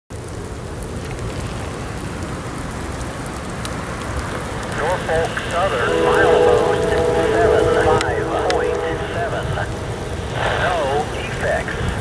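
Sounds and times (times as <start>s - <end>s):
steady rain hiss: 0.1s - 12.0s.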